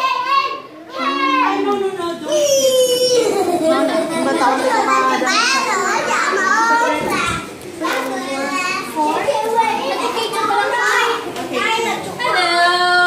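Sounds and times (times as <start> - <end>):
young children chattering: 0.0 - 13.0.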